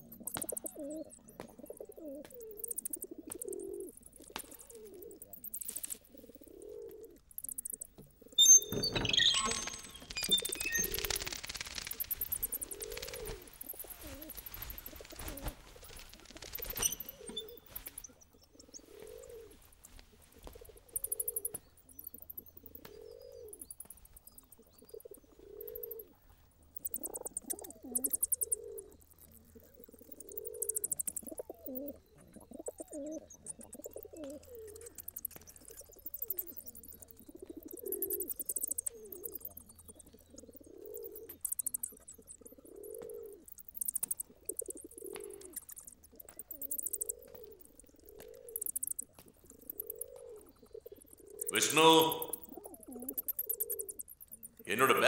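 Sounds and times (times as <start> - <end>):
pigeons cooing: 0.0 - 55.0.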